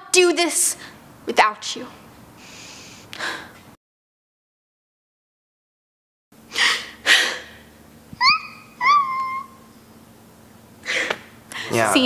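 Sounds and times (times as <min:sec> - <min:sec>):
girl fake crying: 0:08.2 - 0:09.7.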